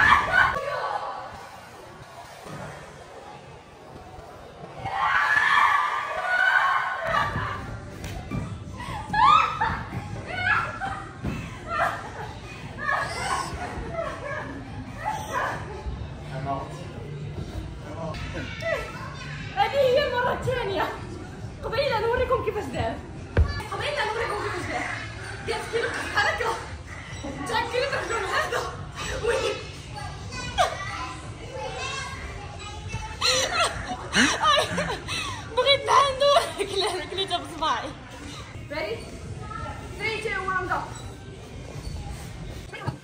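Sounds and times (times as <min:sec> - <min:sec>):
people laughing: 0:33.2 - 0:35.7.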